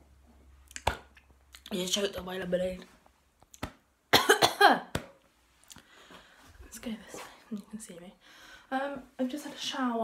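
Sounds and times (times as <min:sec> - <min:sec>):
woman coughing: 0:04.1 - 0:04.9.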